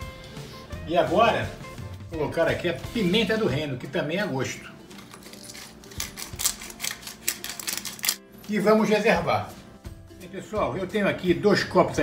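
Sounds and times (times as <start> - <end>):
pepper mill grinding peppercorns: 4.9 - 8.3.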